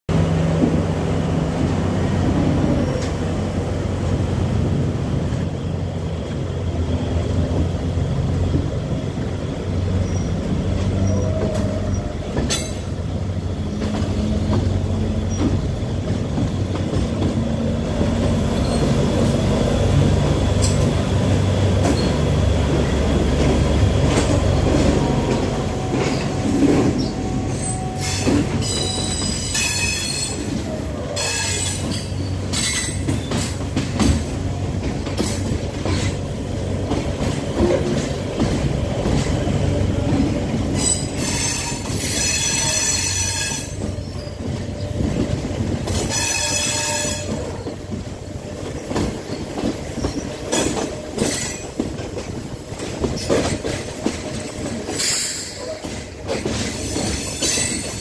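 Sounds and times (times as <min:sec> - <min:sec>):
train rumbling over track: 0:00.1 - 0:58.0
high-pitched wheel squeal: 0:26.9 - 0:33.0, 0:40.8 - 0:44.9.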